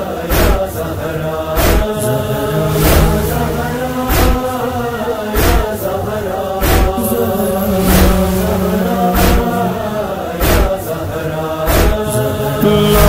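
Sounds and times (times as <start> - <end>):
chorus chanting and humming: 0.0 - 13.0
slow heavy beat thuds: 1.6 - 5.8, 6.6 - 10.8.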